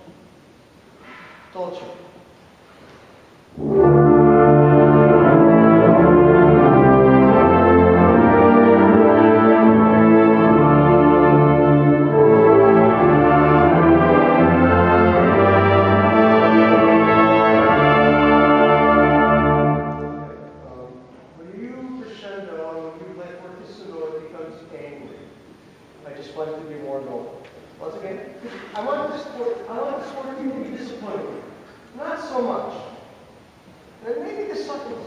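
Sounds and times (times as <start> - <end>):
brass instruments: 3.5 - 20.8
wind ensemble playing chords: 3.5 - 21.7.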